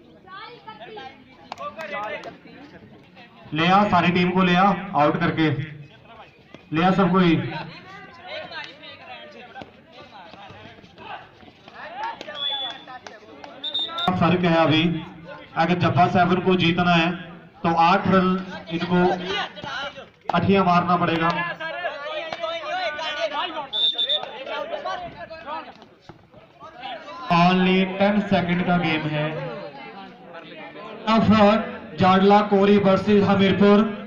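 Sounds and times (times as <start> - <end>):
commentary: 0.0 - 34.0
people calling out: 12.0 - 14.2
high whistle blast: 13.6 - 14.2, 23.7 - 24.3.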